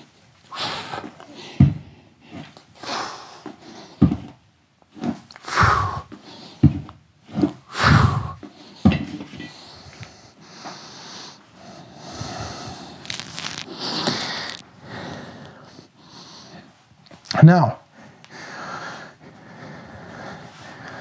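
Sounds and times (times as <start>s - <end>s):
sharp forceful exhalations: 0.5s - 1.6s, 2.3s - 3.9s, 5.4s - 6.6s, 7.4s - 9.0s, 12.0s - 15.7s.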